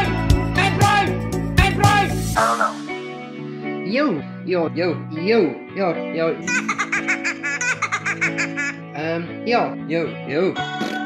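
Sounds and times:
background music: 0:00.0 - 0:11.0
rapid high laughing: 0:06.5 - 0:08.8.

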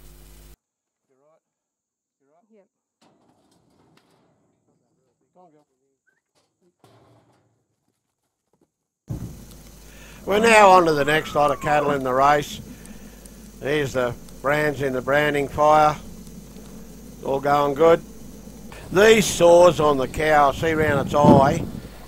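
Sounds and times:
low hum: 0:09.1 - 0:22.0
faint wavering calls: 0:09.8 - 0:22.0.

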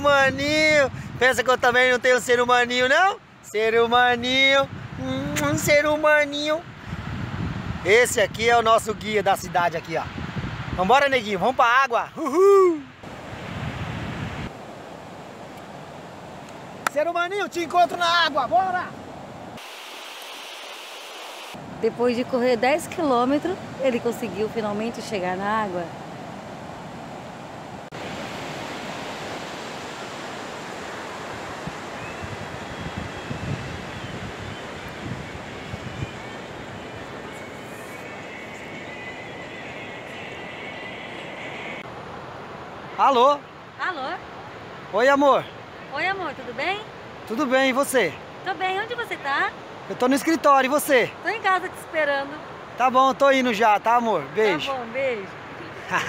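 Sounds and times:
wind buffeting microphone: 0:00.0 - 0:01.2, 0:04.6 - 0:06.0, 0:06.6 - 0:10.9, 0:13.0 - 0:14.6, 0:23.4 - 0:39.2
ocean surf breaking: 0:04.6 - 0:56.0.

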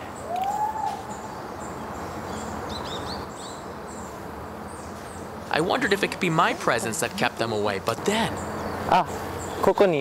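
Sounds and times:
drawn-out rising and falling call: 0:00.0 - 0:09.7
forest background noise: 0:00.0 - 0:10.0.

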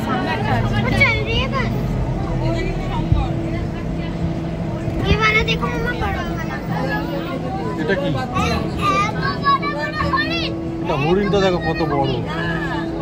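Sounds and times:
bus engine running: 0:00.0 - 0:13.0
passengers' voices: 0:00.0 - 0:13.0.

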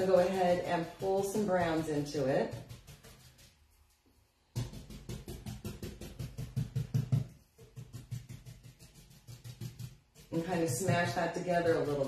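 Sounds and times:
paintbrush dabbing on wood: 0:00.0 - 0:12.0.

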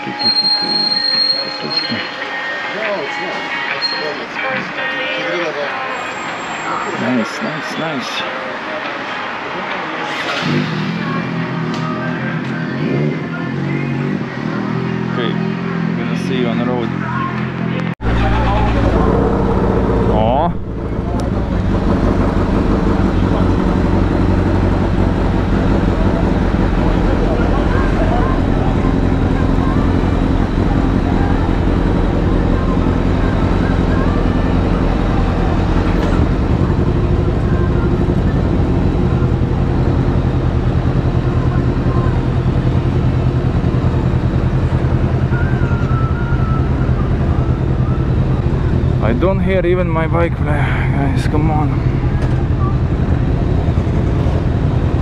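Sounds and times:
motorcycle engines idling: 0:19.6 - 0:55.0.

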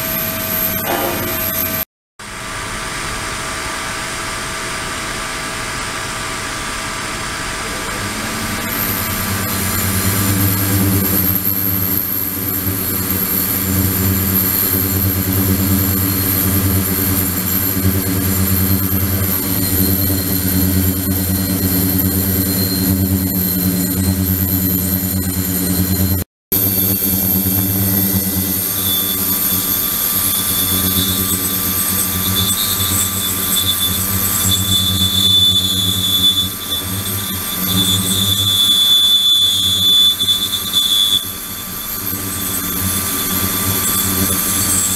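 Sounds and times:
ultrasonic tank humming: 0:07.5 - 0:44.9
high whistling tone: 0:08.1 - 0:44.9.

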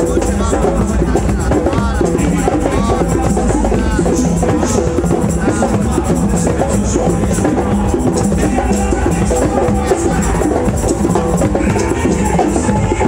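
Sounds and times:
drums played in rhythm: 0:00.0 - 0:13.0.

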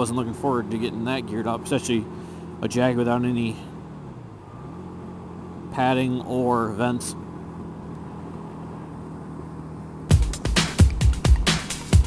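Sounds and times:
motorcycle engine droning: 0:00.0 - 0:12.0.

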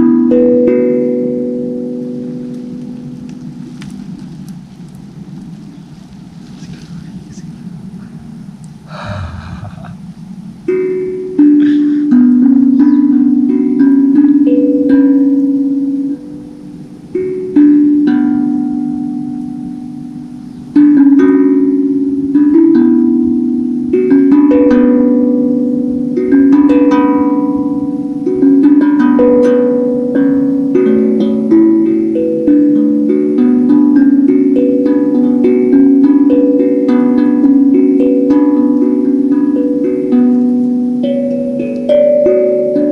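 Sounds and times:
handpan ringing notes: 0:00.0 - 0:42.9.

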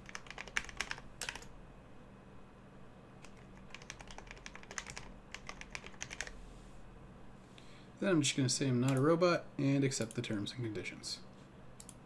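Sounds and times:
computer keyboard typing: 0:00.0 - 0:01.5, 0:03.2 - 0:06.4.

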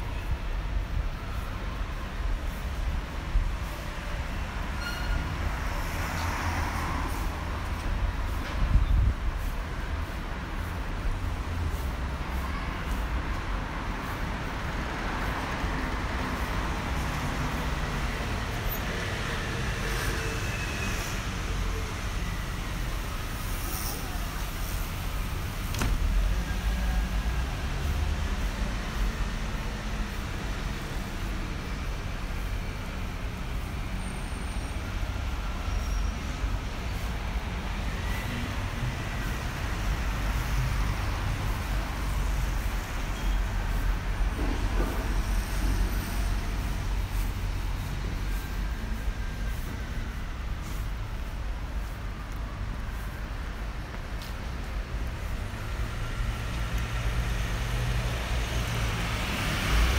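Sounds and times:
vehicles passing with low rumble: 0:00.0 - 0:59.9.

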